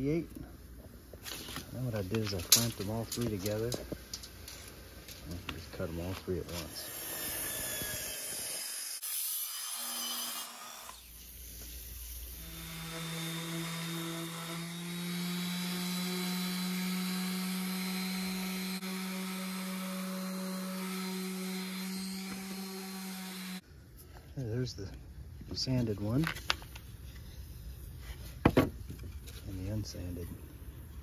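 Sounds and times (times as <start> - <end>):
miter saw cutting boards: 6.5 - 11.2, 12.1 - 23.6
orbital sander sanding wood: 11.6 - 23.6.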